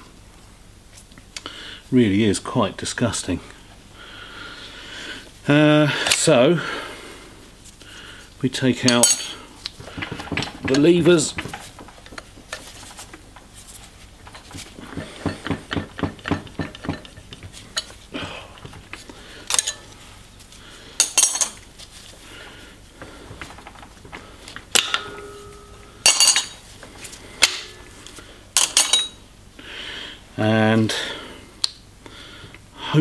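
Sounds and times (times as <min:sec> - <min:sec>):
metal levers clinking and scraping: 0:08.8 - 0:09.4, 0:19.5 - 0:19.9, 0:23.4 - 0:26.6, 0:28.6 - 0:29.2.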